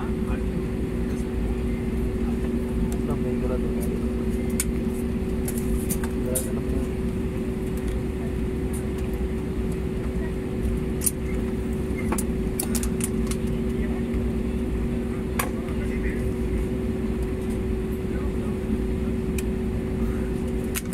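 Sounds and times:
airliner cabin engine hum: 0.0s - 20.9s.

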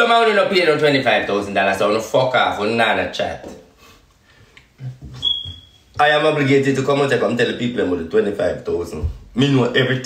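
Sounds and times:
high-pitched beep: 5.2s - 5.8s.

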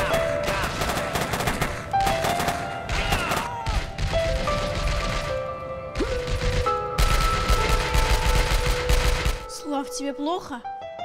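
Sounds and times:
automatic rifle fire: 6.0s - 9.4s.

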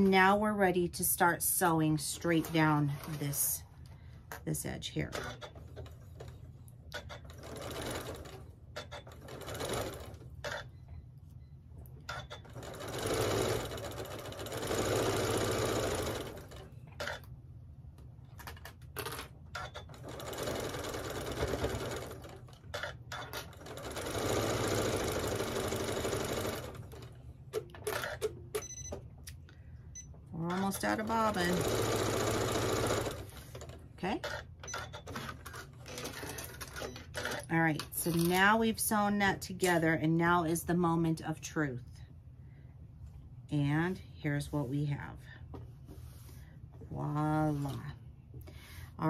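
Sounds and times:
sewing machine stitching: 1.9s - 3.6s, 5.0s - 10.7s, 12.1s - 17.2s, 19.0s - 27.2s, 30.4s - 38.5s.

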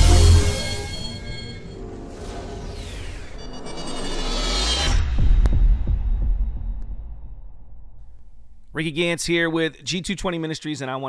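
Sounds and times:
deep bass boom: 5.1s - 8.6s.

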